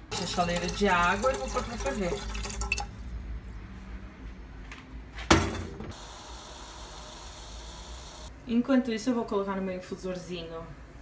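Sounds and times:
kettle clanking: 0:00.0 - 0:02.9.

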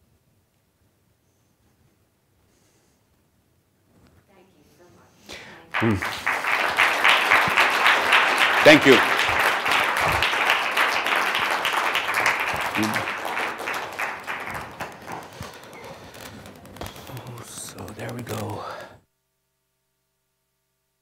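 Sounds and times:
audience applause: 0:05.7 - 0:18.1.

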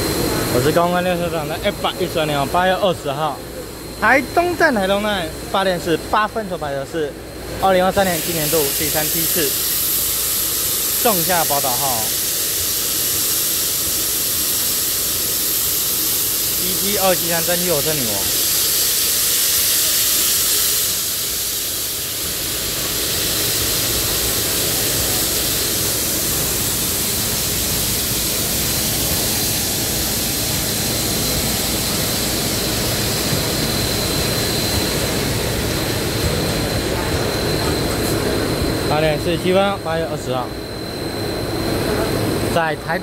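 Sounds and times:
faint high whine: 0:00.0 - 0:12.2, 0:23.8 - 0:43.0
steam locomotive hissing: 0:00.0 - 0:43.0.

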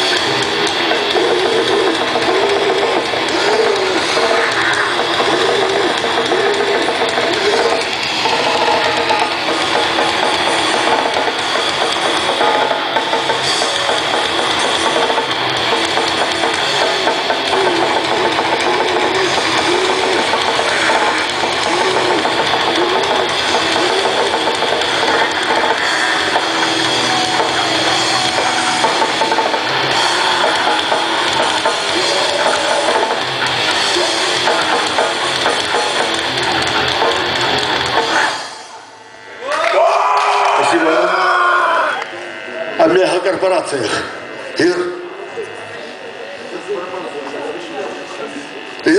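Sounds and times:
bass: 0:00.0 - 0:48.9
distorted guitars: 0:00.0 - 0:48.9
drums: 0:00.0 - 0:48.9.

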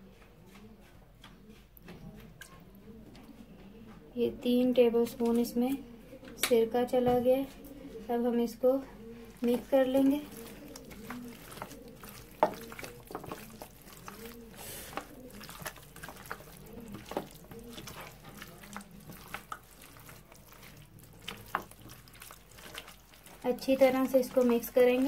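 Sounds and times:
wet squelching of hand mixing meat: 0:04.4 - 0:05.8, 0:07.2 - 0:25.0.

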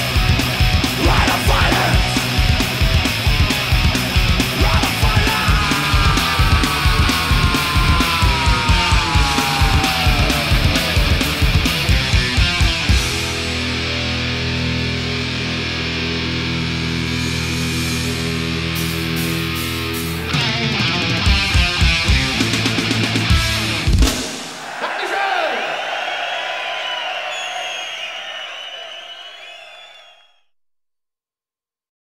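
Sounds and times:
crowd cheering: 0:00.0 - 0:13.0, 0:24.1 - 0:30.5
drum and cymbal hits: 0:23.9 - 0:24.6.

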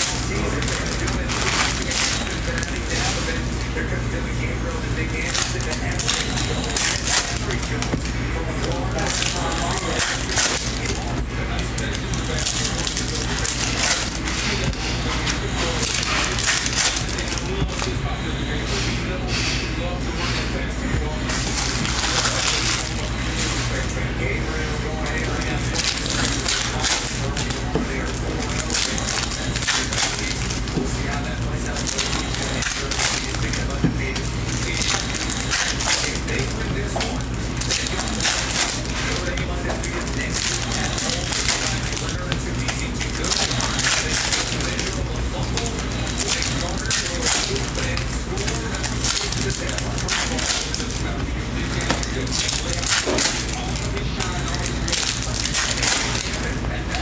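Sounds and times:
foil wrappers crinkling and tearing: 0:00.0 - 0:57.0
steady low hum: 0:00.0 - 0:57.0.

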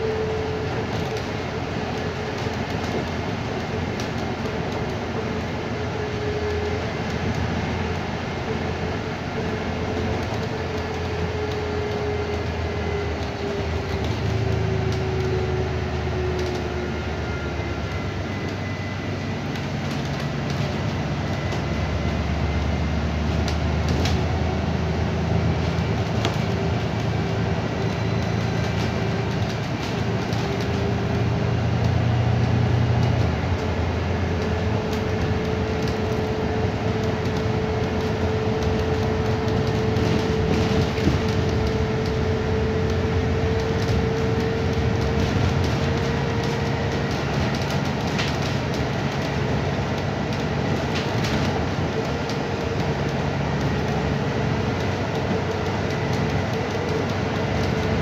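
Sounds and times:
bus interior drone: 0:00.0 - 0:58.0.

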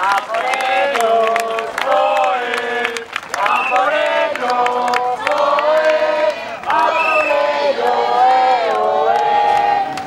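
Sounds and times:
crowd chanting: 0:00.0 - 0:10.0.

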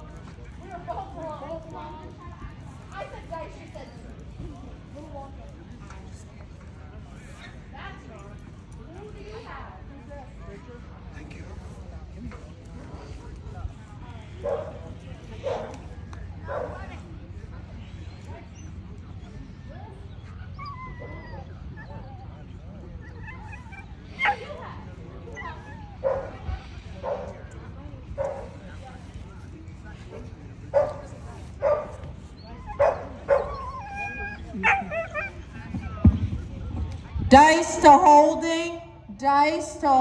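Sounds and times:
dog barking: 0:31.6 - 0:32.0.

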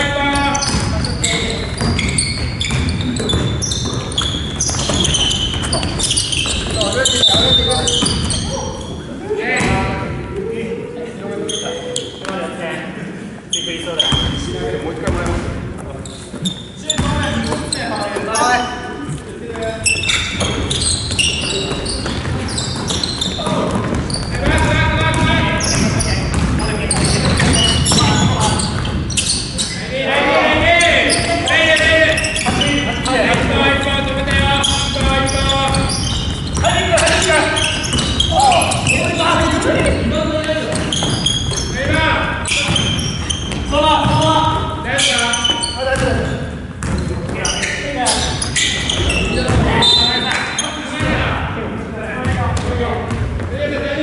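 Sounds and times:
players calling out: 0:00.0 - 0:12.6, 0:16.2 - 0:51.4
basketball bouncing on wooden floor: 0:00.6 - 0:08.4, 0:20.3 - 0:29.2, 0:33.3 - 0:38.6, 0:40.7 - 0:42.0, 0:42.7 - 0:44.3, 0:46.0 - 0:47.4, 0:48.9 - 0:49.8.

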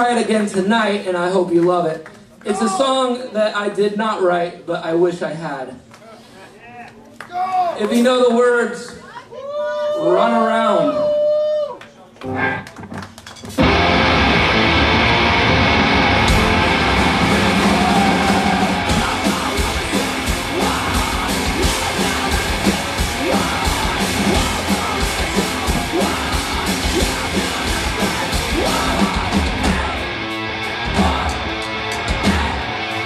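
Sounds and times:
distorted electric guitar: 0:12.2 - 0:33.0
drum kit and cymbals: 0:13.5 - 0:33.0.

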